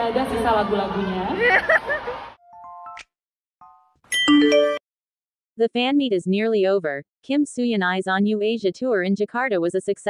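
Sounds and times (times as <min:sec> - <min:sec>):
bright bell-like chord: 0:04.1 - 0:04.8.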